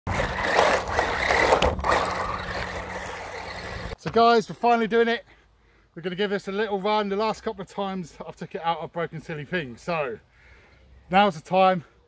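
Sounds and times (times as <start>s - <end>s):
electric motor whine: 0.1s - 4.0s
tyres on loose ground: 0.1s - 10.5s.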